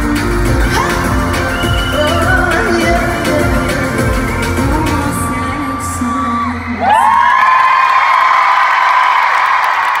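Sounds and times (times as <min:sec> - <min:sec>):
pop song: 0:00.0 - 0:07.4
crowd screaming and cheering: 0:00.0 - 0:10.0.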